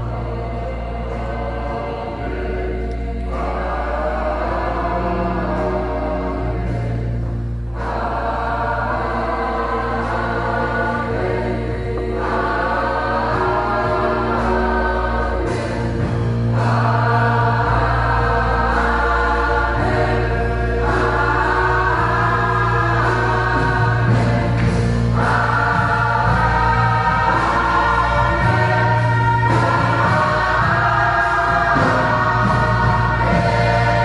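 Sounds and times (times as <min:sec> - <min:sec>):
gospel choir singing in harmony: 0:00.0 - 0:34.0.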